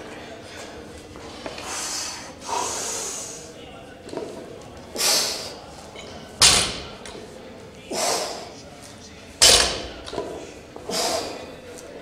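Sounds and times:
weight plates thudding on floor: 6.4s - 7.1s, 9.4s - 10.4s
man breathing forcefully: 10.9s - 11.4s.

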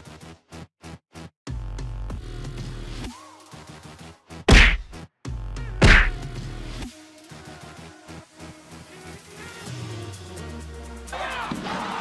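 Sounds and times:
plush toy slammed with loud whacks: 4.5s - 5.0s, 5.8s - 6.2s.

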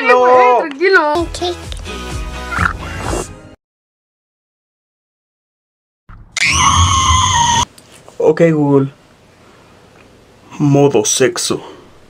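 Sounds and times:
loud high-pitched scream: 6.4s - 7.7s.

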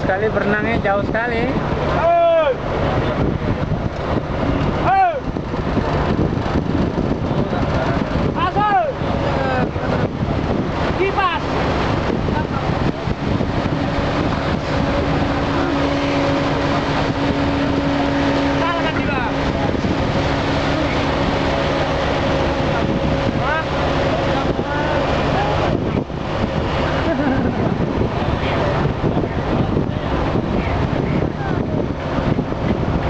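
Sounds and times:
ferry engine running: 0.0s - 33.0s
water and wind hissing: 0.0s - 33.0s.

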